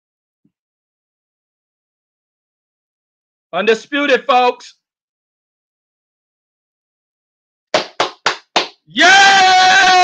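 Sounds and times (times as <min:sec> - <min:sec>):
hand claps: 0:07.7 - 0:08.9.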